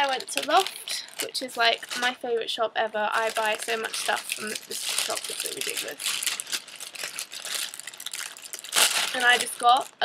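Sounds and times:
shopping bag rustling: 0:00.0 - 0:02.2, 0:03.1 - 0:09.9.

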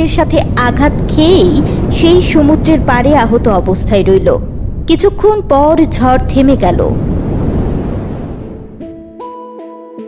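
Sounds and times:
rushing wind and rain: 0:00.0 - 0:09.0
light music with plucked notes: 0:08.8 - 0:10.0.

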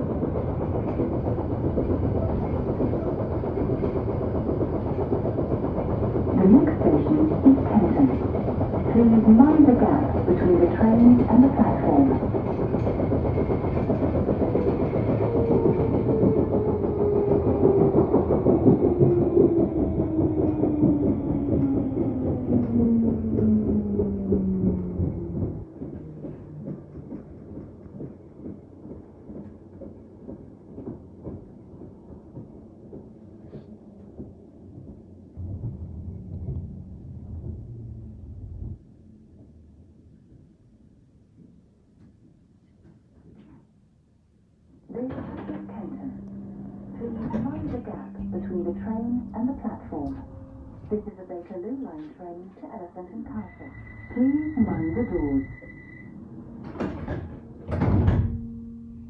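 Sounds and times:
train running rumble: 0:00.0 - 0:40.7, 0:44.9 - 0:59.0
train motor whine: 0:45.0 - 0:51.3, 0:53.2 - 0:59.0.

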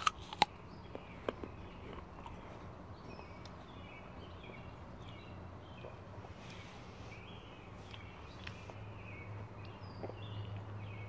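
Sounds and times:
crunching apple bites: 0:00.0 - 0:03.6.

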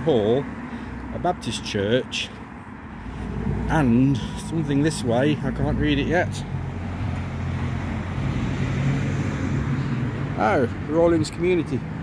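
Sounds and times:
car engines humming: 0:00.0 - 0:12.0.

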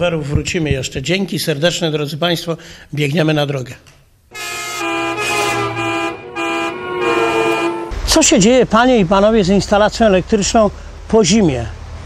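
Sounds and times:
held horn notes: 0:04.3 - 0:08.1.

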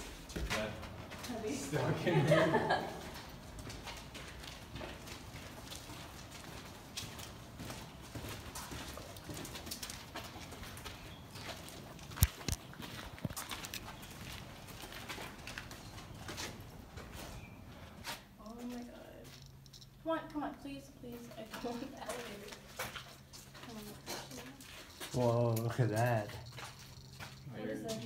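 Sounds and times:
footsteps on gritty concrete: 0:00.0 - 0:01.6, 0:02.3 - 0:19.6, 0:21.2 - 0:28.0.

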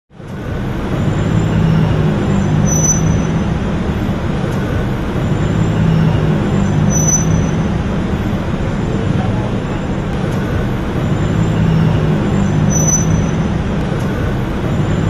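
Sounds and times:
road traffic engine hum: 0:00.1 - 0:15.0.

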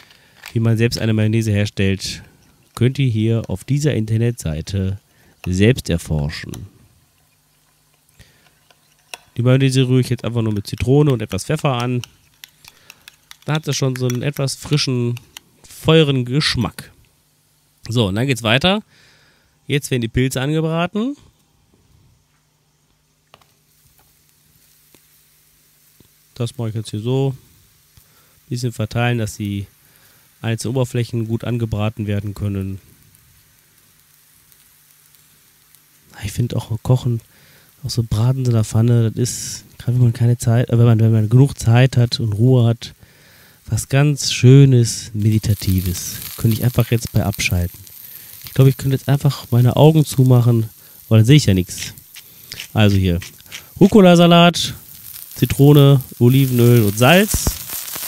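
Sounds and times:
mushrooms sizzling in a pan: 0:00.0 - 0:19.4, 0:23.0 - 0:58.0
tiny oil crackles: 0:02.0 - 0:16.1, 0:23.3 - 0:42.5, 0:43.1 - 0:58.0.

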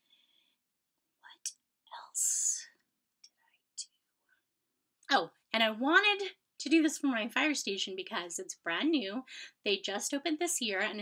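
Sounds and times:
woman whispering: 0:01.2 - 0:04.0.

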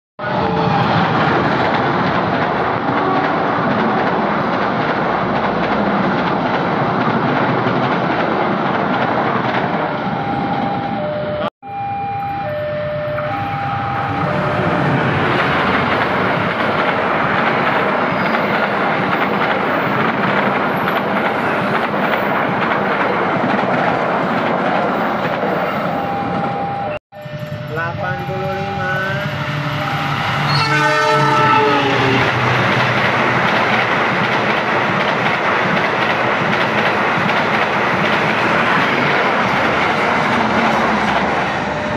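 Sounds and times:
diesel train passing: 0:00.2 - 0:11.5, 0:12.5 - 0:41.9
locomotive horn two-note blasts: 0:27.2 - 0:32.4.

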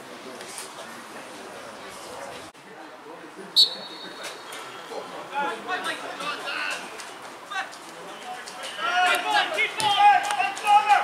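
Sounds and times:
players and spectators calling: 0:03.6 - 0:11.0
loud shout: 0:08.8 - 0:11.0.

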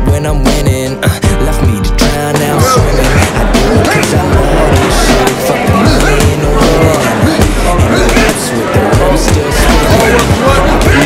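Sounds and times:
crowd chatter: 0:00.0 - 0:11.0
hip-hop backing track: 0:00.0 - 0:11.0.

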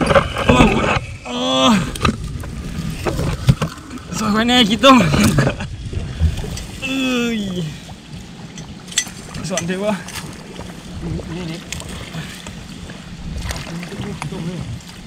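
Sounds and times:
water sloshing: 0:00.0 - 0:15.0
man exclaiming: 0:06.8 - 0:07.8.

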